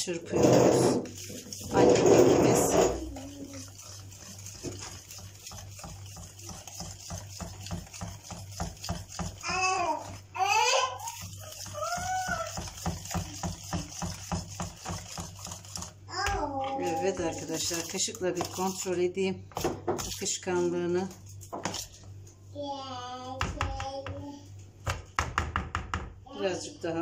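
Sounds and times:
whisk scraping in bowl: 0:00.0 - 0:16.0, 0:16.7 - 0:19.0, 0:19.6 - 0:22.0.

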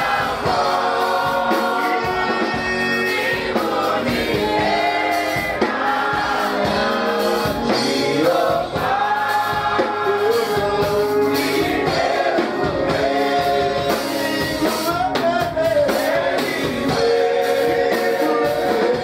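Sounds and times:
congregation singing gospel song: 0:00.0 - 0:19.0.

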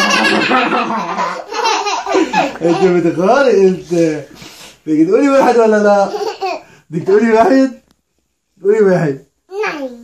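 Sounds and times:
young child laughing: 0:00.0 - 0:03.1.

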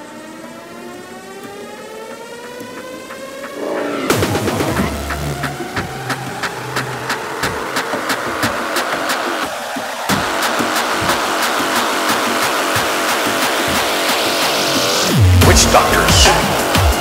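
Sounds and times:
drum and bass percussion beat: 0:02.1 - 0:17.0
rising noise sweep: 0:02.7 - 0:17.0.

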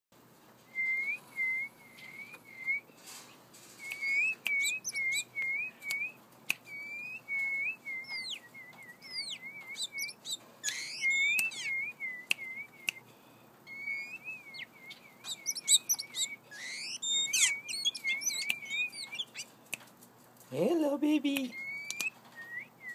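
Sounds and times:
bird whistling calls: 0:00.8 - 0:02.8, 0:03.8 - 0:13.0, 0:13.7 - 0:19.6, 0:21.5 - 0:22.9.

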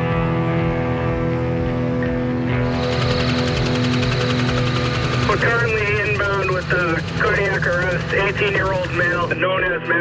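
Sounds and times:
background music with held tones: 0:00.0 - 0:07.2
helicopter rotor chopping: 0:02.4 - 0:09.8.

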